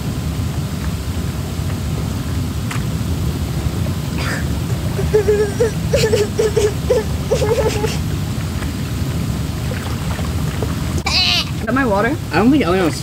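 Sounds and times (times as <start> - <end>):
hot tub jets bubbling: 0.0 - 13.0.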